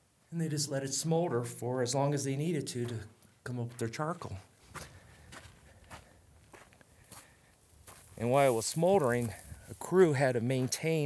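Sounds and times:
footsteps on dry ground: 2.8s - 11.0s.

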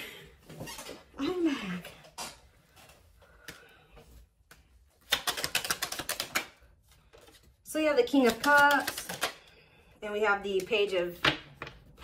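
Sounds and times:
cards being shuffled: 4.4s - 9.6s.

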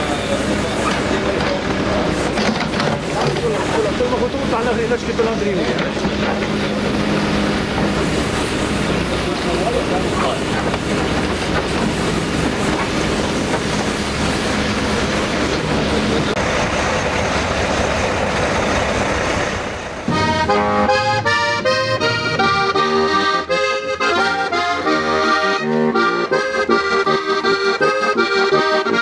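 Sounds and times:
diesel engine running under load: 0.0s - 29.0s
button accordion tune: 20.1s - 29.0s.

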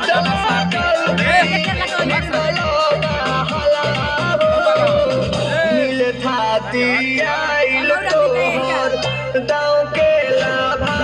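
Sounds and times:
song over loudspeakers: 0.0s - 11.0s.

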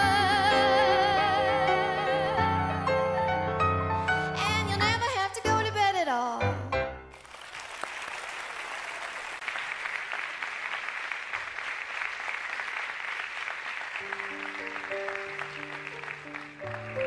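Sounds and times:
audience applauding: 7.1s - 17.0s.

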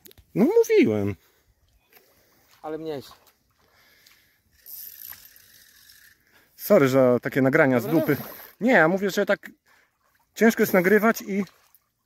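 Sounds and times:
fishing reel ratcheting: 4.5s - 6.6s.

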